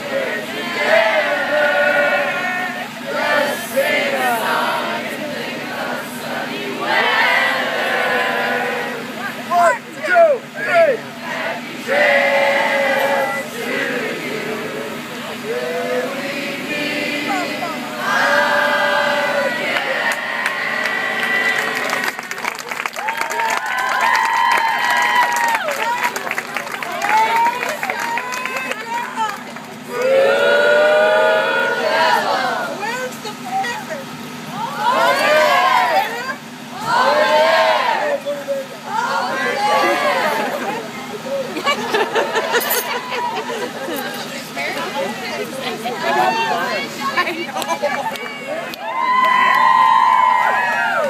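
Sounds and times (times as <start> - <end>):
group singing long held notes: 0.0 - 9.3, 11.1 - 22.1, 29.9 - 32.8, 34.5 - 38.2, 38.9 - 40.8
people chattering loudly: 13.0 - 18.0, 31.6 - 48.7
people cheering: 18.5 - 32.8, 34.5 - 51.0
people clapping: 19.7 - 30.2, 47.5 - 51.0
person laughing: 40.2 - 44.0.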